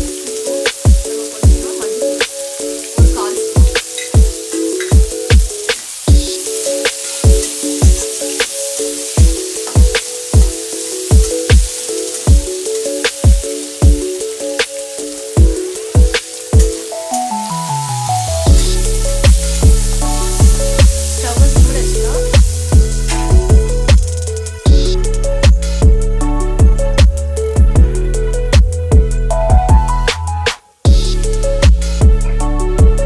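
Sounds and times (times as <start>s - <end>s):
food sizzling in oil: 0.0s - 30.1s
electronic music with kick drum: 0.0s - 33.0s.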